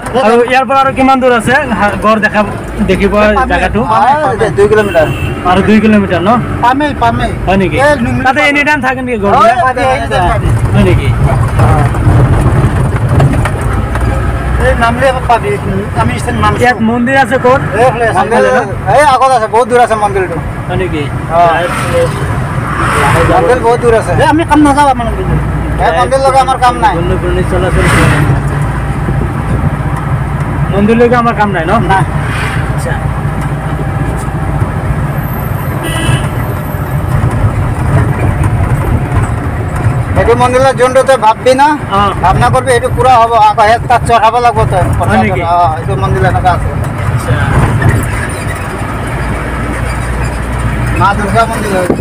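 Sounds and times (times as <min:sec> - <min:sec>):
vehicle engine and road rumble: 0:00.0 - 0:52.0.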